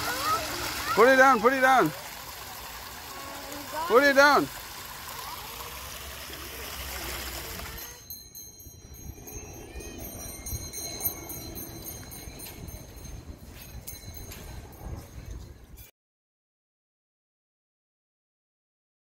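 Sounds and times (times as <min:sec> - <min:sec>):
water running over rocks: 0:00.0 - 0:08.0
high tinkling tones: 0:00.0 - 0:15.9.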